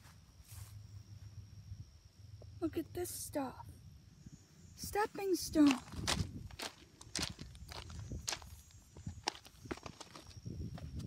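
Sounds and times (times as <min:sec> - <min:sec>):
footsteps crunching on gravel: 0:05.5 - 0:11.0.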